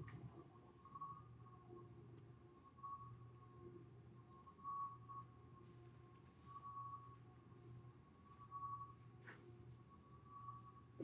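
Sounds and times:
faint high whine: 0.3s - 11.0s.

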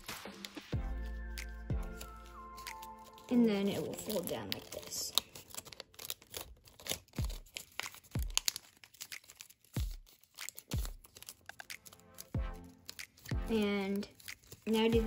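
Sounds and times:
paper crinkling and crackling: 0.0s - 15.0s.

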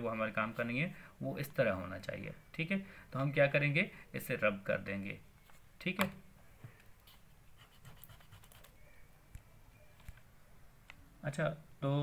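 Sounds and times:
eraser rubbing on paper: 7.1s - 8.8s.

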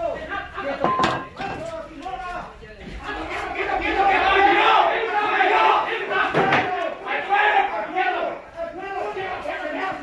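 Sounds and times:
men shouting commands: 1.4s - 10.0s.

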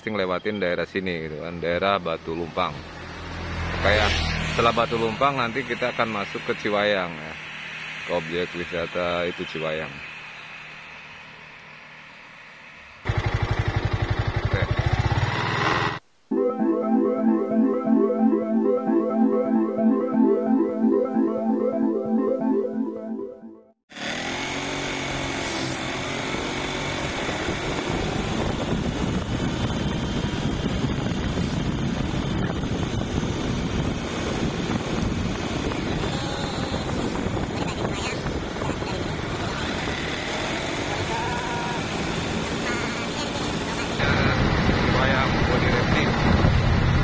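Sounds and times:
road and wind noise: 0.0s - 16.0s, 24.0s - 47.0s
motorcycle engine: 2.7s - 16.0s, 23.9s - 47.0s
synth music: 16.3s - 23.8s.

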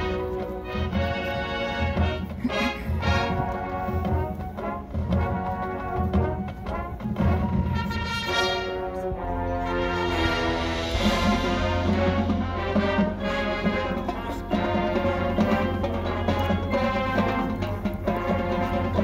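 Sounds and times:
marching band playing brass music: 0.0s - 19.0s.

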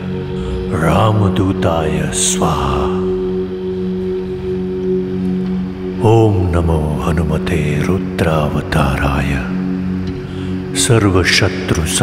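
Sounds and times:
low drone of backing music: 0.0s - 12.0s.

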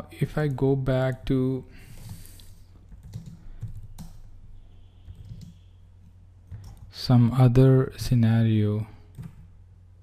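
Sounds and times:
keyboard typing: 1.9s - 4.3s, 5.0s - 6.9s, 9.1s - 9.5s.

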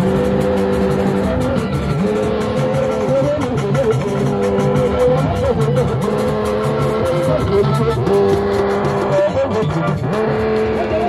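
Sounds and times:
fast percussion beat: 0.0s - 11.0s.

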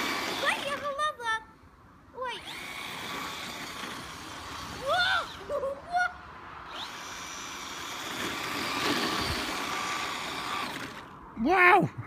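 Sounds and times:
electric motor whine: 0.0s - 0.4s, 2.4s - 5.5s, 6.6s - 11.2s
person exclaiming: 4.8s - 6.2s, 11.4s - 12.0s.

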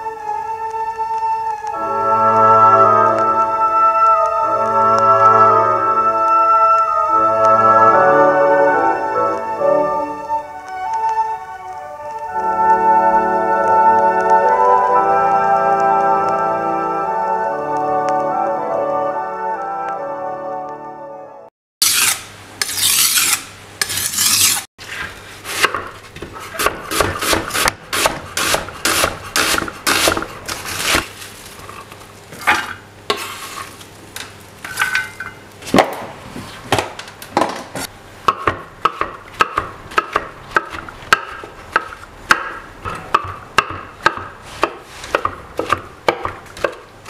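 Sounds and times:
knife rasping on whetstone: 21.8s - 24.7s, 26.4s - 31.0s, 44.4s - 45.7s
knife chopping on wooden board: 25.5s - 31.0s, 38.3s - 46.9s.

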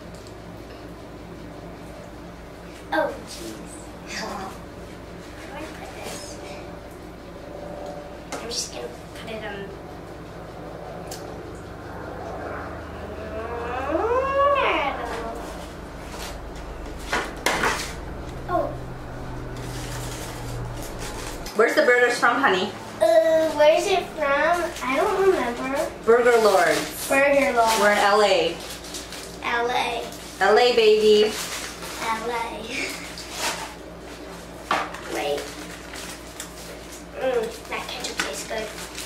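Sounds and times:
paper wrappers rustling: 24.5s - 33.6s, 35.0s - 39.0s.

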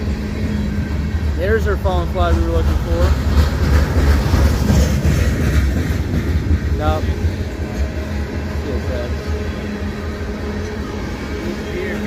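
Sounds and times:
freight train wheels rumbling on rail: 0.0s - 12.0s.

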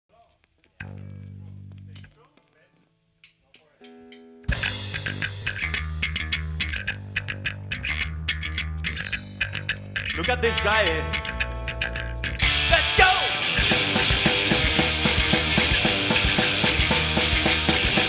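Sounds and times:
bass guitar note: 0.8s - 2.1s, 4.5s - 18.0s
punk band playing: 3.9s - 7.2s, 10.2s - 18.0s.

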